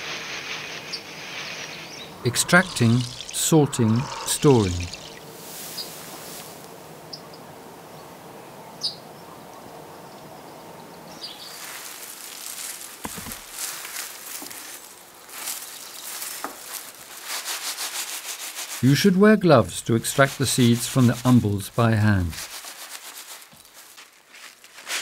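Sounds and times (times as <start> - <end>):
hands rubbing dried plants: 0.0 - 6.6, 11.4 - 19.0, 19.8 - 25.0
faint steady hiss: 0.0 - 24.6.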